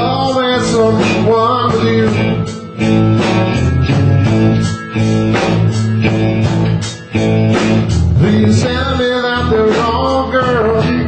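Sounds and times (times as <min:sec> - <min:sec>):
drums: 0:00.0 - 0:11.0
electric guitars: 0:00.0 - 0:11.0
live blues band: 0:00.0 - 0:11.0.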